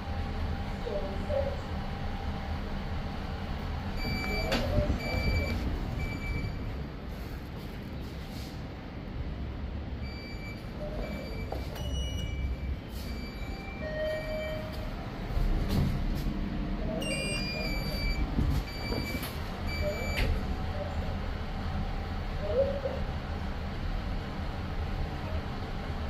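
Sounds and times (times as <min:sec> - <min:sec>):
low hum and rumble: 0:00.0 - 0:26.0
lift electronic beeps: 0:04.0 - 0:06.7, 0:10.0 - 0:15.0, 0:17.0 - 0:20.4.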